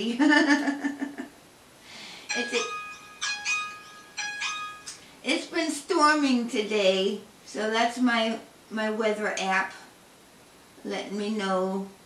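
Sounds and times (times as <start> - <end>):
two-note electronic alert chime: 2.3 - 5.0.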